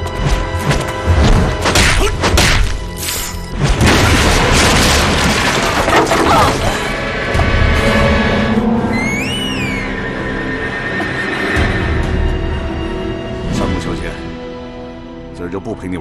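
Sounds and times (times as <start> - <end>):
dramatic music: 0.0 - 16.0
wood splintering crash: 3.7 - 6.9.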